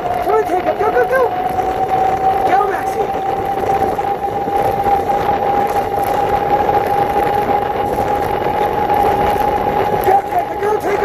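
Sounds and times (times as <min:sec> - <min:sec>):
electric scooter motor whine: 0:00.0 - 0:11.0
wind rushing over microphone: 0:00.0 - 0:11.0.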